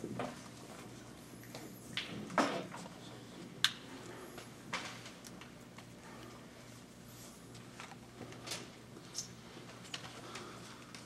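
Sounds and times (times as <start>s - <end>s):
small knocks and rustles: 0.0s - 3.6s.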